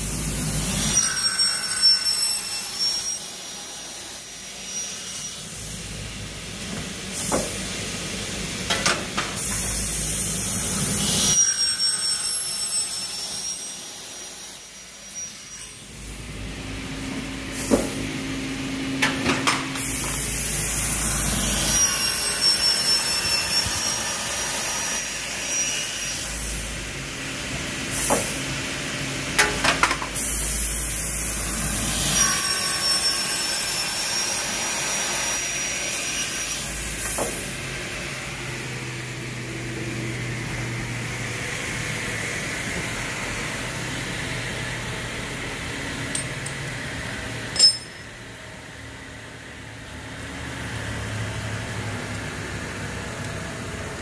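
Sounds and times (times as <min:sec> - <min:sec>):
high ringing whine: 0:00.0 - 0:05.7, 0:10.4 - 0:16.5, 0:20.1 - 0:26.5, 0:31.2 - 0:34.6, 0:47.5 - 0:48.4
saw cutting aluminium: 0:00.1 - 0:06.0, 0:09.4 - 0:16.2, 0:19.8 - 0:26.9, 0:30.2 - 0:38.9.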